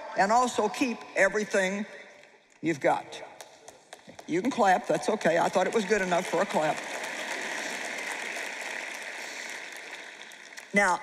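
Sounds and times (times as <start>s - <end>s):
audience applauding: 3.8s - 11.0s.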